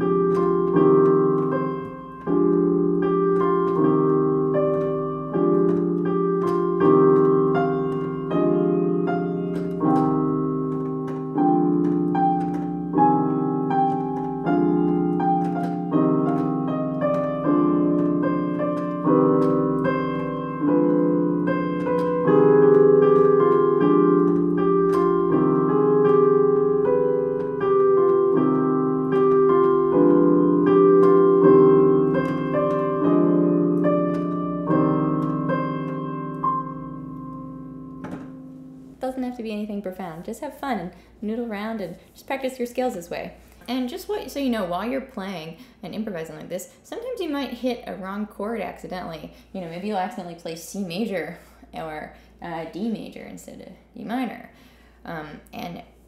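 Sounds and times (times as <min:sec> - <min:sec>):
slow piano chords and melody: 0:00.0 - 0:39.1.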